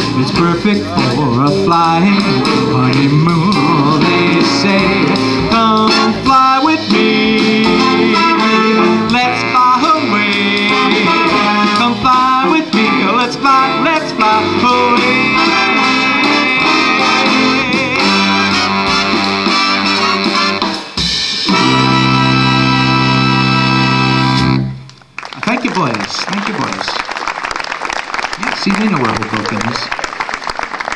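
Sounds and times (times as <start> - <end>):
jazz big band playing swing: 0.0 - 26.4.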